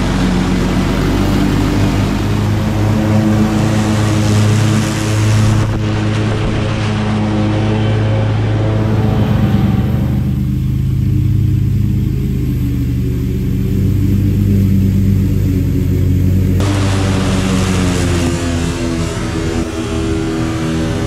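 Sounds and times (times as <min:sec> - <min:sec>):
mower blades cutting grass: 0:00.0 - 0:21.0
riding mower engine hum: 0:00.0 - 0:21.0.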